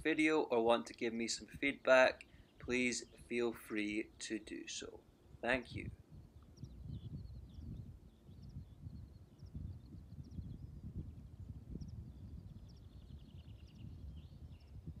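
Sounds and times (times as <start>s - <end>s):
small birds chirping: 0.9s - 15.0s
wind buffeting microphone: 5.3s - 15.0s.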